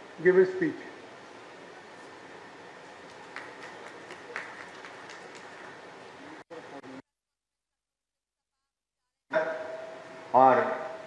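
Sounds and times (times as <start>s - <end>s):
hand claps: 3.1s - 5.8s.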